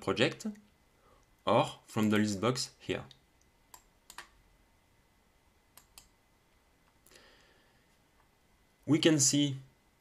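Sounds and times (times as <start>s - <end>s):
computer mouse clicks: 3.7s - 4.4s, 5.7s - 6.2s.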